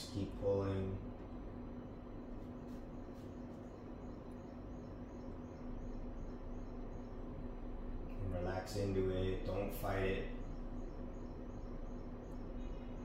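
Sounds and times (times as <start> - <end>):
faint constant tone: 0.0 - 13.0
steady low hum: 0.0 - 13.0.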